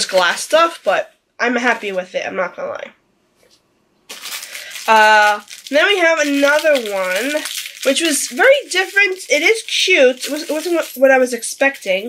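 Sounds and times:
package rustling: 0:00.0 - 0:01.1, 0:04.1 - 0:12.0
woman speaking: 0:00.0 - 0:02.9, 0:04.7 - 0:12.0.

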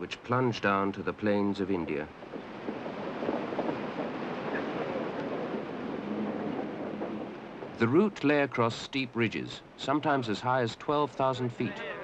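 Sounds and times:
steady rushing noise: 0:01.0 - 0:11.5.

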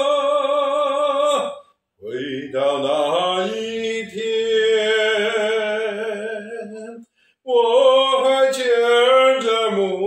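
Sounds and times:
man singing unaccompanied ballad: 0:00.0 - 0:10.0.

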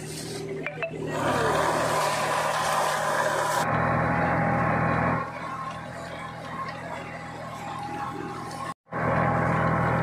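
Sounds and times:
tractor engine running: 0:00.0 - 0:10.0.

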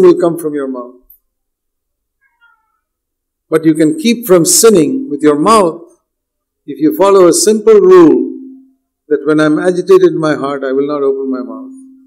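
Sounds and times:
faint high-pitched squeak: 0:02.2 - 0:02.9.

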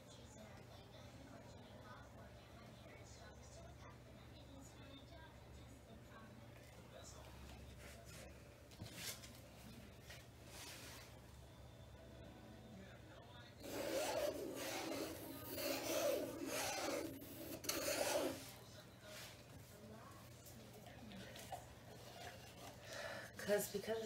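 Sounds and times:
tool rubbing across wet paint: 0:13.6 - 0:18.5.

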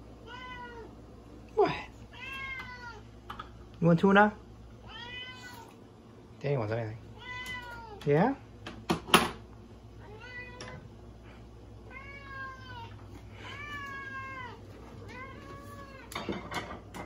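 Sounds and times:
cat meowing: 0:00.2 - 0:00.9, 0:02.1 - 0:03.0, 0:04.9 - 0:05.8, 0:07.2 - 0:08.0, 0:10.0 - 0:10.8, 0:11.9 - 0:16.3.

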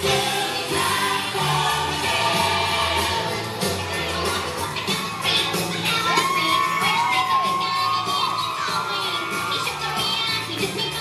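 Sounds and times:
backing music: 0:00.0 - 0:11.0
audience cheering and whooping: 0:04.7 - 0:11.0.

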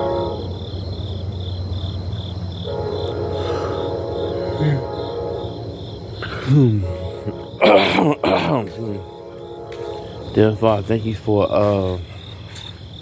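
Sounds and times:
long held musical tone: 0:00.0 - 0:01.4, 0:02.6 - 0:12.0
low steady hum: 0:00.0 - 0:12.2
cricket chirping: 0:00.0 - 0:13.0.

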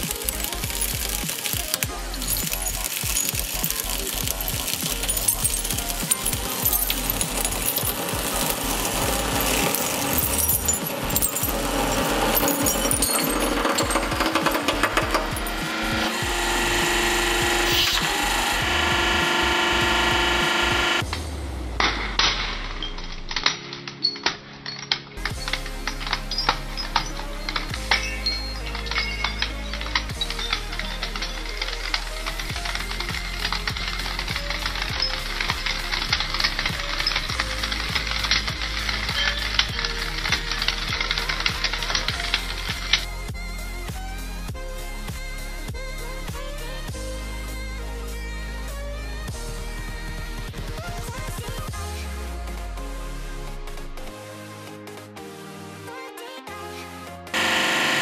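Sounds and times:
glass cracking under press: 0:00.0 - 0:18.5, 0:21.8 - 0:43.2
electronic music with kick drum: 0:00.0 - 0:23.4, 0:25.2 - 0:55.9
steady held tones: 0:00.0 - 0:24.2, 0:57.4 - 0:58.0.

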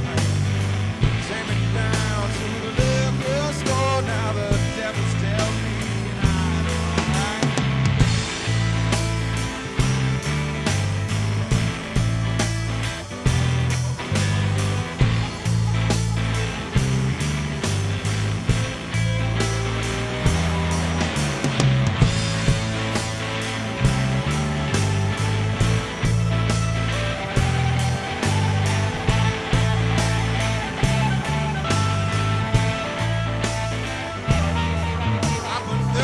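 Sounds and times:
live rock band playing: 0:00.0 - 0:36.0
drum beat: 0:06.2 - 0:36.0.

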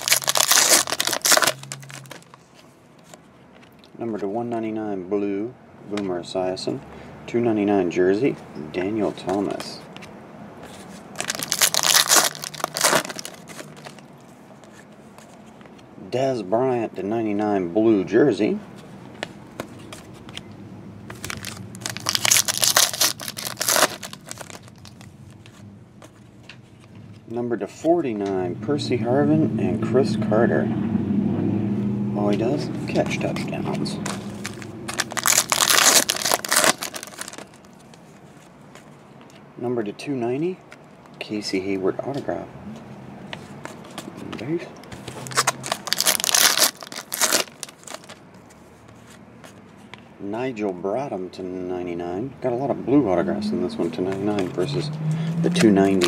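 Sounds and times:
card pack wrapper crinkling: 0:00.0 - 0:03.2, 0:11.1 - 0:14.1, 0:21.1 - 0:25.1, 0:34.0 - 0:38.5, 0:45.0 - 0:48.2
cards clicking and rustling: 0:00.0 - 0:03.9, 0:08.8 - 0:15.9, 0:19.1 - 0:20.5, 0:21.1 - 0:27.0, 0:32.9 - 0:39.4, 0:43.3 - 0:50.0, 0:54.1 - 0:54.7.

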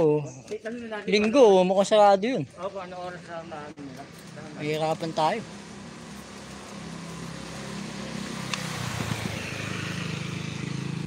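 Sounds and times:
vehicle engine running: 0:02.8 - 0:11.0.

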